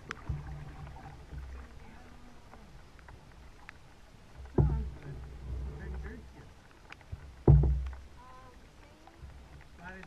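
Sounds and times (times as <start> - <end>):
low water rumble: 0.0 - 10.0
paddle thump on hull: 4.4 - 6.2, 7.0 - 8.1.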